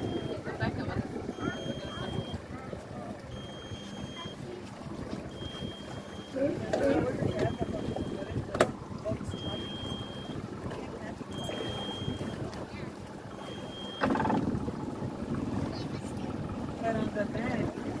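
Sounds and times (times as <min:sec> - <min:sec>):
wind on microphone: 0:00.0 - 0:13.3, 0:14.0 - 0:18.0
boat motor running: 0:00.0 - 0:18.0
water rushing past hull: 0:00.0 - 0:18.0.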